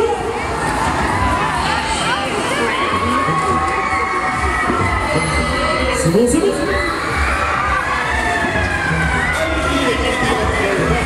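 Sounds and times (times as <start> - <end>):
riders screaming and shouting: 0.0 - 11.0.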